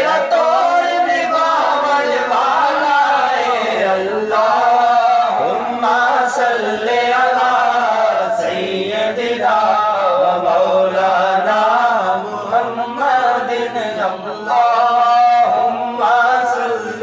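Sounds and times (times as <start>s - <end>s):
man chanting devotional verse: 0.0s - 17.0s.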